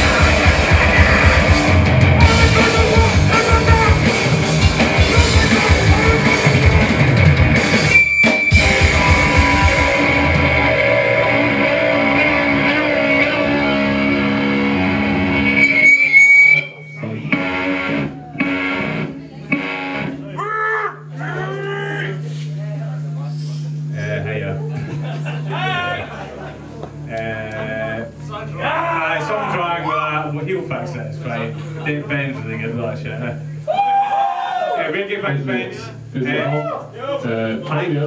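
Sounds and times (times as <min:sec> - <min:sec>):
people shouting: 0:00.0 - 0:04.2, 0:04.9 - 0:06.8, 0:08.6 - 0:13.7, 0:20.4 - 0:22.2, 0:33.7 - 0:34.9
shouted vocals: 0:00.0 - 0:04.2, 0:04.9 - 0:06.9, 0:08.6 - 0:14.0, 0:33.7 - 0:34.9
drum kit: 0:00.0 - 0:16.6
electric guitar: 0:00.0 - 0:20.4
amplifier hum: 0:00.0 - 0:38.0
high whistle of feedback: 0:07.8 - 0:10.2, 0:15.4 - 0:17.2.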